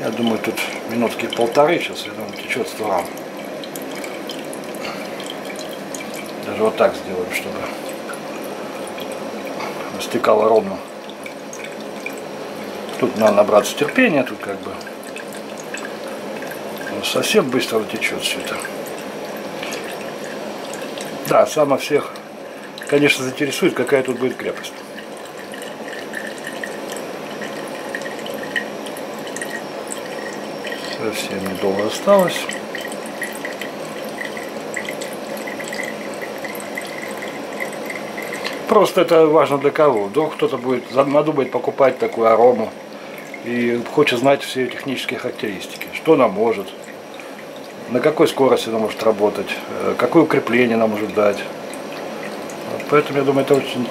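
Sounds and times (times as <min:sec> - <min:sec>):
liquid trickling into glass: 0:00.0 - 0:53.9.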